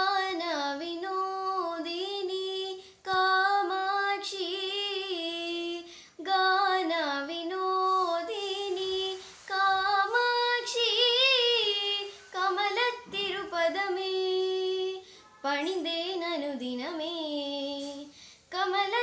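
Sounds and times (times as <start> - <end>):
girl singing unaccompanied: 0.0 - 19.0.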